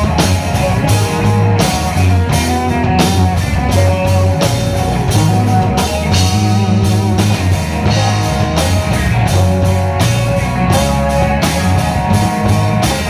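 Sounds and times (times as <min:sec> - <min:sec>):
bass guitar: 0:00.0 - 0:13.0
drums: 0:00.0 - 0:13.0
lead guitar with bent notes: 0:00.0 - 0:13.0.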